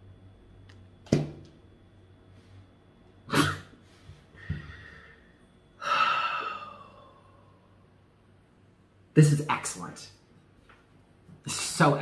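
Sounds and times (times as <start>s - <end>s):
man exhaling breathily: 4.3s - 7.6s.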